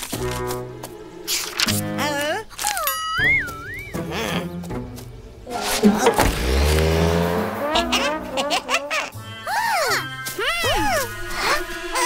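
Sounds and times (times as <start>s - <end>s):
cartoon car engine revving: 5.5s - 9.2s.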